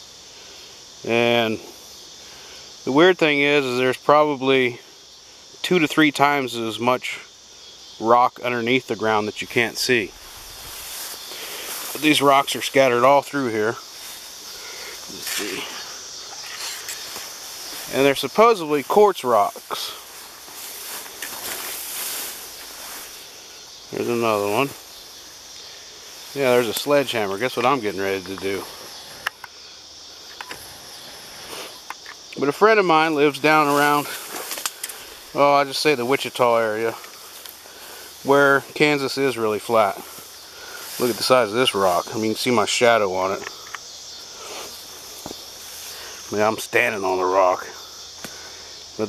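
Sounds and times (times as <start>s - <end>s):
insect chorus: 0.0s - 49.0s
footsteps through dry grass: 10.0s - 29.2s, 33.0s - 42.3s, 44.1s - 46.4s.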